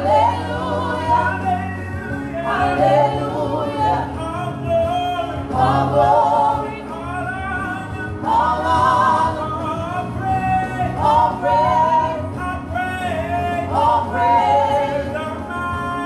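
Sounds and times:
group singing in harmony: 0.0s - 16.0s
steady low backing music: 0.0s - 16.0s.

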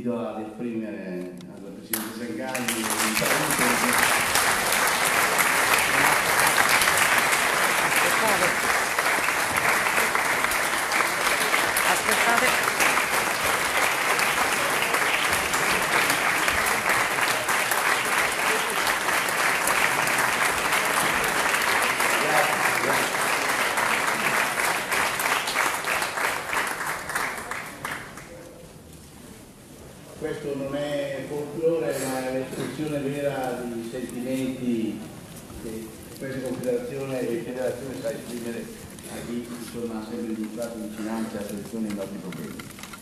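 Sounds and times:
audience applauding: 2.0s - 28.4s.

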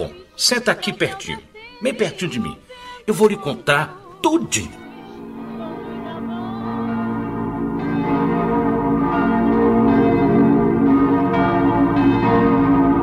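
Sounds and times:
church bells pealing: 4.6s - 13.0s.

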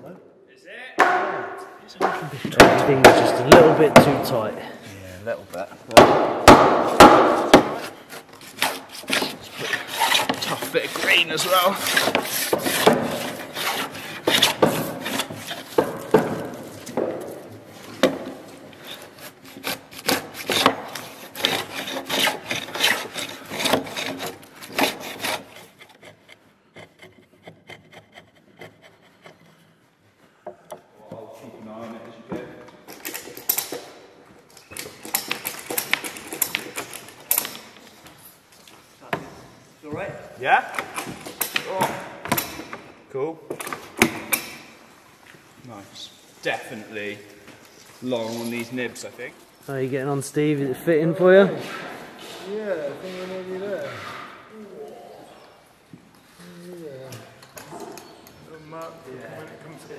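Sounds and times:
chisel shaving wood: 8.1s - 16.0s, 18.8s - 29.7s.

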